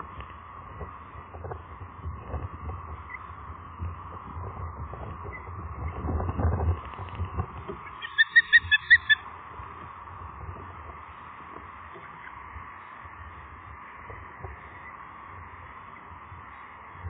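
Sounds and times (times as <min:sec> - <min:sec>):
low rumble: 0:00.0 - 0:17.0
bird whistled chirps: 0:08.0 - 0:09.2.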